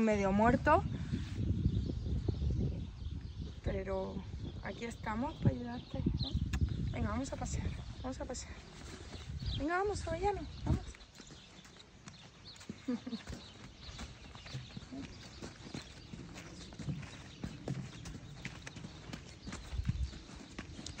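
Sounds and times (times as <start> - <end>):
horse hooves on sandy dirt: 4.7 - 21.0
footsteps on sandy dirt: 7.6 - 21.0.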